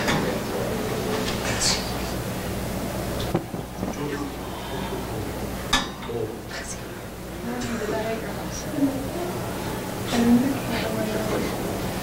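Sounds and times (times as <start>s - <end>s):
faint murmured voices: 0.0s - 12.0s.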